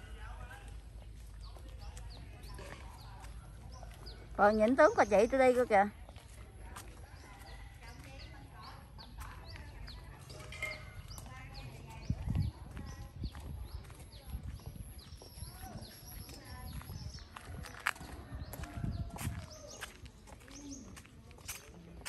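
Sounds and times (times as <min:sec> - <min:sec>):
birds chirping: 0:00.0 - 0:22.0
footsteps on concrete: 0:00.2 - 0:22.0.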